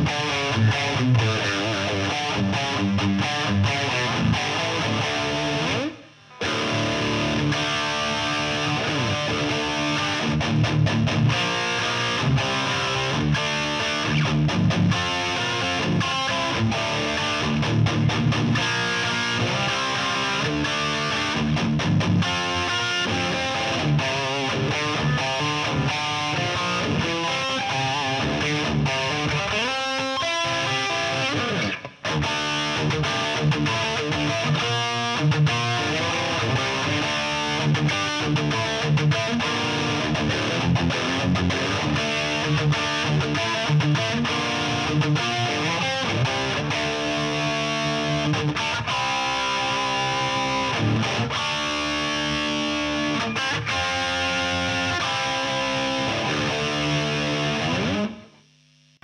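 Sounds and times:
distorted electric guitar riffs: 0:00.0 - 0:59.0.

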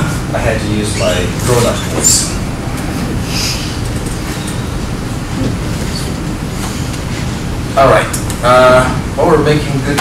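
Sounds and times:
low room noise rumble: 0:00.0 - 0:10.0.

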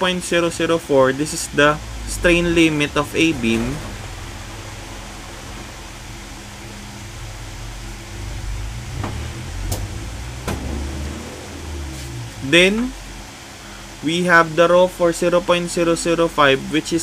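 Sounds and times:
low rumble and hum: 0:00.6 - 0:16.8.

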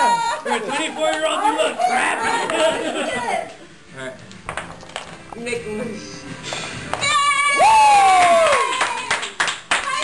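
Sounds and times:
group clapping: 0:06.9 - 0:10.0
person cheering: 0:07.1 - 0:09.2.

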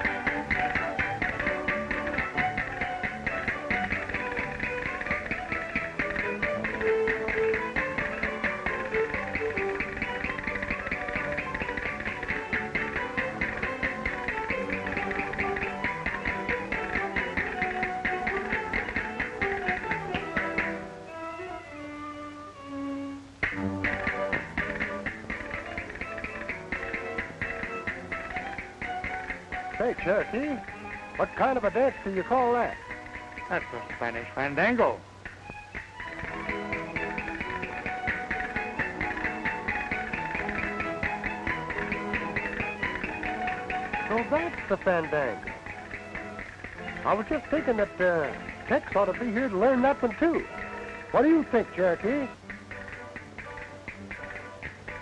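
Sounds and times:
fast percussive taps: 0:00.0 - 0:21.0, 0:23.4 - 0:55.0
string band playing lively music: 0:00.0 - 0:55.0.

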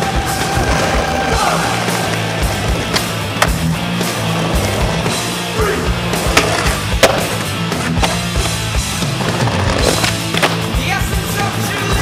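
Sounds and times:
skateboard wheels rolling on asphalt: 0:00.0 - 0:05.4, 0:06.0 - 0:10.7
skateboard clacking on ground: 0:02.8 - 0:03.6.

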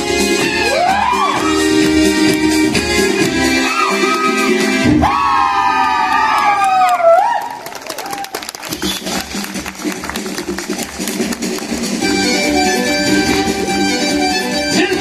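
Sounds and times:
latin dance music: 0:00.0 - 0:06.1, 0:08.5 - 0:15.0
audience applause and cheering: 0:00.2 - 0:13.7.

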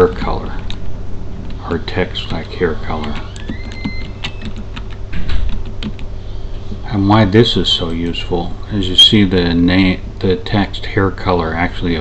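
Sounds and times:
low steady hum: 0:00.0 - 0:12.0
keyboard key clicks: 0:03.0 - 0:06.1.

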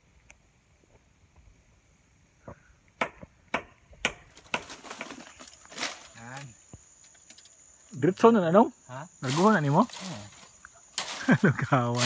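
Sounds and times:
machete chopping bamboo: 0:03.0 - 0:05.2.

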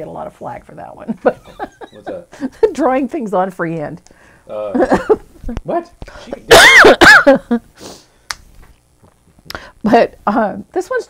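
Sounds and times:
woman laughing: 0:01.1 - 0:02.7, 0:04.8 - 0:05.3, 0:06.6 - 0:07.6.

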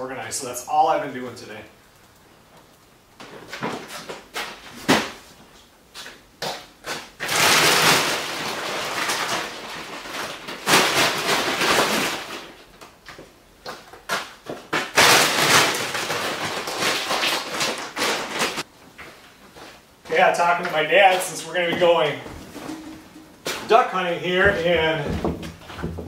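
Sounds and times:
rustling and scraping: 0:03.2 - 0:06.2, 0:21.1 - 0:26.0.

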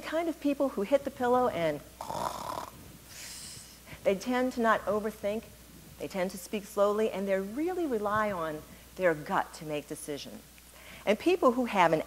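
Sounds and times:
woman imitating a snore: 0:02.0 - 0:03.8
hissing breath out: 0:02.0 - 0:04.0.

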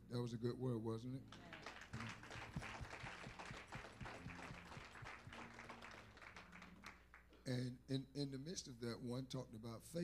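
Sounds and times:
congregation applauding: 0:01.4 - 0:07.3.

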